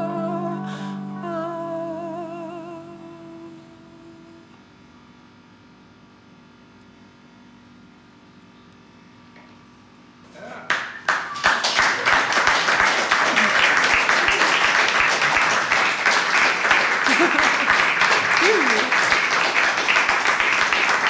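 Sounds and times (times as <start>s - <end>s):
audience applauding: 10.7s - 21.0s.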